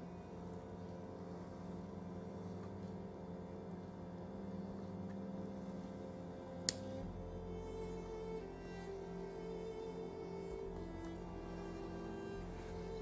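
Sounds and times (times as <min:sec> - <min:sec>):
soft instrumental music: 0:00.0 - 0:13.0.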